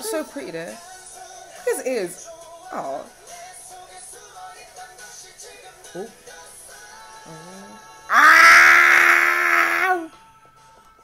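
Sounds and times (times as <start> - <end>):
woman howling: 8.1 - 10.1.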